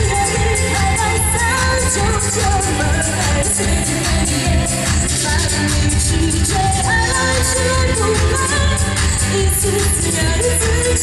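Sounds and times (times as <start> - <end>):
bass guitar: 0.0 - 11.0
drums: 0.0 - 11.0.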